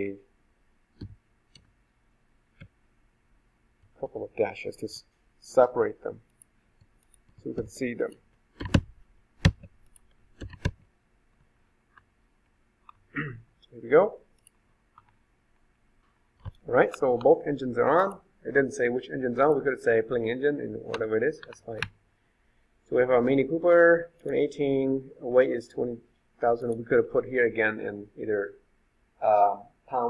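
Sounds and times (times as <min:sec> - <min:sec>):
person speaking: 0:03.9 - 0:06.4, 0:07.3 - 0:08.8, 0:13.2 - 0:14.4, 0:16.4 - 0:22.0, 0:22.8 - 0:28.6, 0:29.2 - 0:30.0.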